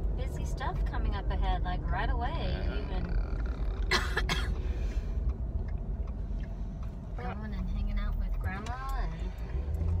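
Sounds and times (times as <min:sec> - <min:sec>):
road noise inside a car: 0:00.0 - 0:10.0
girl coughing: 0:03.9 - 0:04.6.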